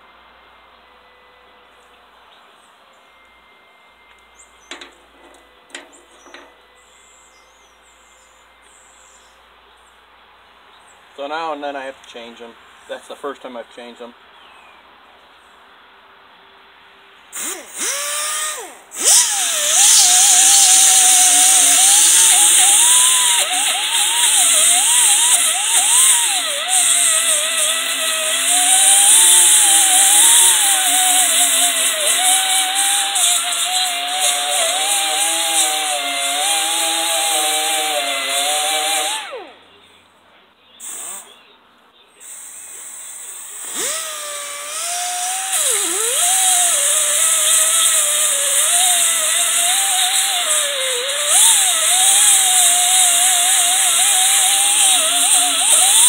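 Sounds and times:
die grinder grinding metal: 4.6s - 6.6s, 17.4s - 39.6s, 42.2s - 56.0s.

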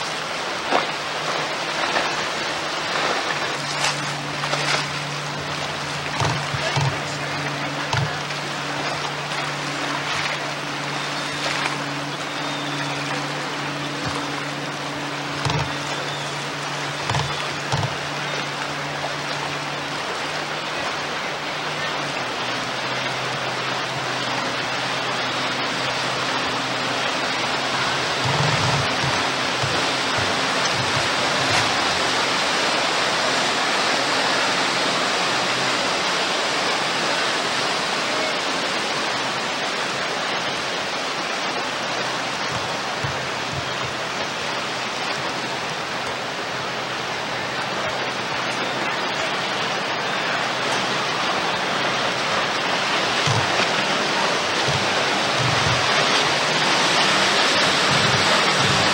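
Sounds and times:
rushing water: 0.0s - 58.9s
wind: 0.0s - 58.9s.

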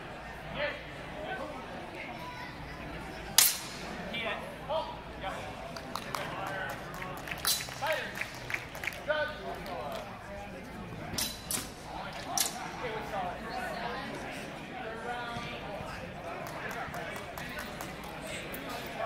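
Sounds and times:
voices of people: 0.0s - 19.0s
sword strike crack: 3.4s - 3.8s.

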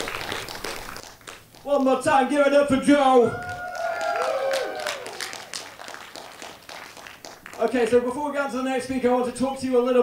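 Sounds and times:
small crowd clapping: 0.0s - 2.0s, 3.3s - 8.3s.

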